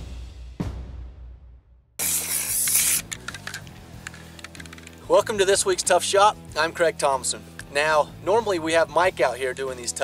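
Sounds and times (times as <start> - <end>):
background music: 0.0 - 10.0
spray paint can hissing: 2.0 - 5.0.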